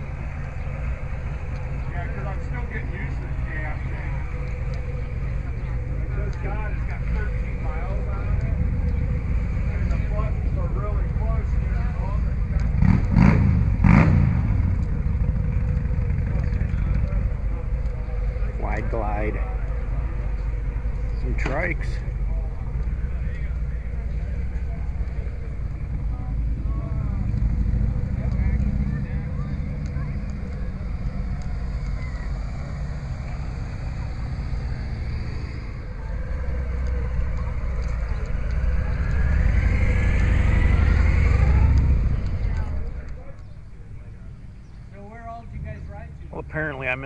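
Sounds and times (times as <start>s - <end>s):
faint voices: 0.0s - 47.0s
vehicle engine passing: 0.0s - 47.0s.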